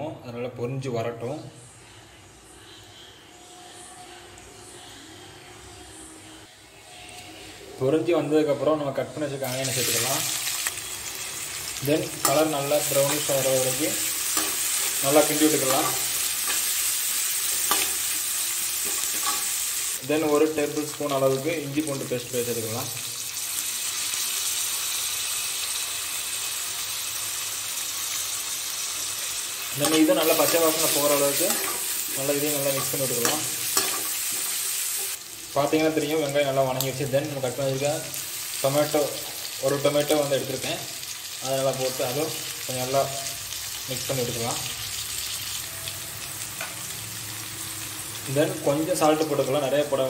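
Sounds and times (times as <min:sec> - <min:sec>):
onions sizzling in hot oil: 0:09.2 - 0:50.0.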